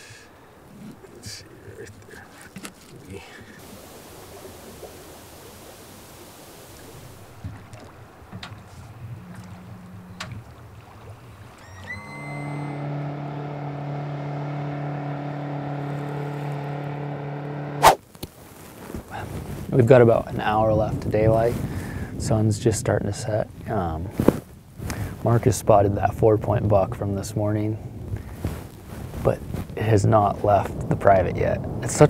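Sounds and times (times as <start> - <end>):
soft hiss: 0.0 - 13.5
outboard motor running: 6.9 - 17.9
sharp crack: 13.2 - 18.3.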